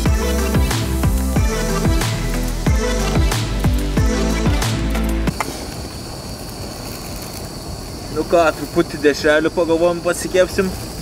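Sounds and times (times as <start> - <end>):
electronic music with heavy bass: 0.0 - 5.3
camping stove burner hissing: 0.0 - 11.0.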